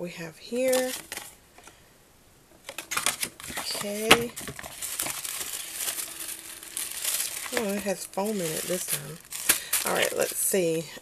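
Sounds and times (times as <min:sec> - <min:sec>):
paper and cardboard rustling: 0:00.6 - 0:01.8, 0:02.6 - 0:10.8.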